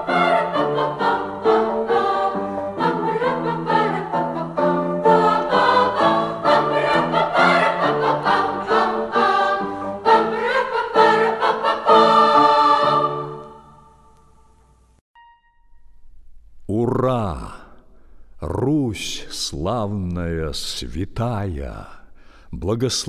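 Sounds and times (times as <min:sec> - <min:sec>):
choir singing: 0:00.0 - 0:14.1.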